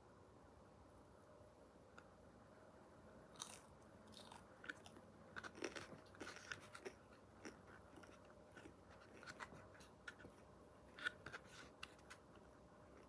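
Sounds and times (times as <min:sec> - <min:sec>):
chewing pizza with crunches: 0:03.4 - 0:11.2.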